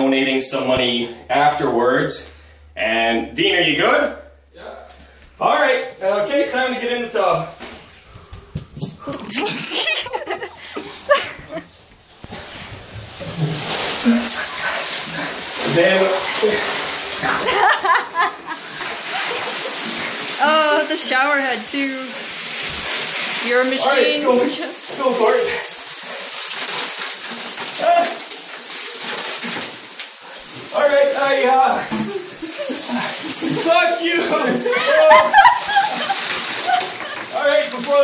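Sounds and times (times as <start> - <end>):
water splashing in bathtub: 3.8 - 38.0.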